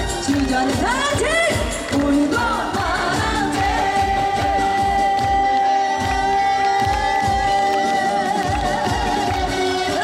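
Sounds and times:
band with kick-drum beat: 0.0 - 10.0
woman singing: 0.0 - 10.0.

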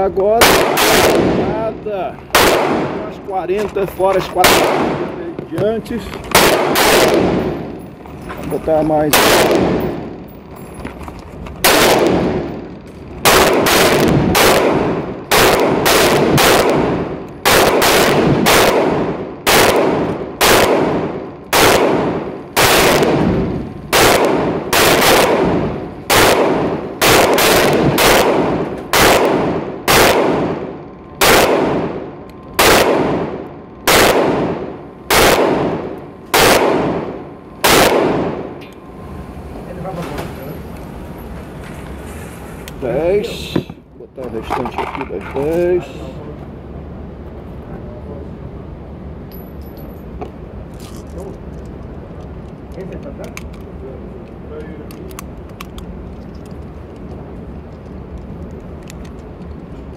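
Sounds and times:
pistol shots echoing: 0.4 - 1.7, 2.3 - 3.2, 4.3 - 5.4, 6.3 - 7.8, 9.0 - 10.2, 11.6 - 38.6.

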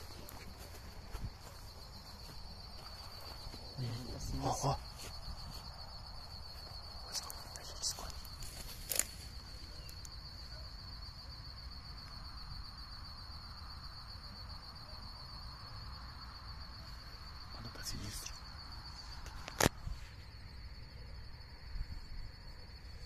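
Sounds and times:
crickets trilling: 0.0 - 23.0
snaps in undergrowth: 8.1 - 9.3, 19.2 - 19.8.

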